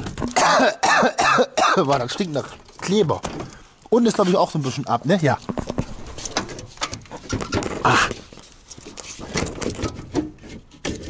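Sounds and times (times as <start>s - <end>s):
clicks and knocks: 0.0s - 0.4s, 5.4s - 11.0s
rubber hose rubbing and scraping: 3.8s - 11.0s.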